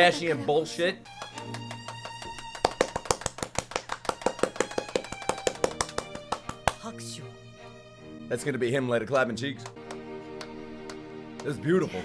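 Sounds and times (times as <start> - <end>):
background music with held tones: 0.0 - 12.0
rapid hand clapping: 1.2 - 6.9, 9.6 - 11.6.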